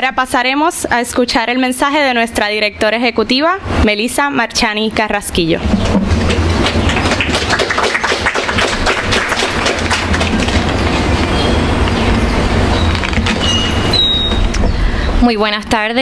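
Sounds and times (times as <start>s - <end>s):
audience clapping: 6.0s - 13.5s.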